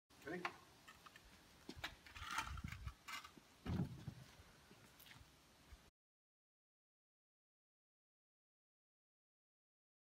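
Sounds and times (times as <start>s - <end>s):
crate scraping on concrete: 2.1s - 4.2s.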